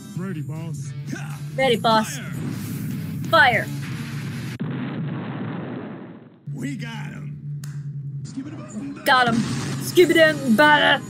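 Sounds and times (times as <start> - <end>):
cartoon explosion: 4.6 - 6.4.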